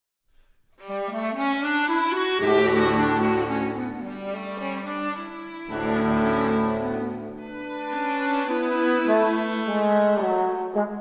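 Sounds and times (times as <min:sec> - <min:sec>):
chamber ensemble playing: 0:00.8 - 0:11.0.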